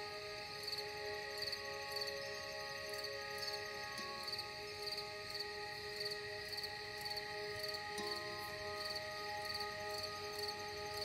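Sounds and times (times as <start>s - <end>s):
crickets chirping: 0.0s - 11.0s
slow ambient music: 0.0s - 11.0s.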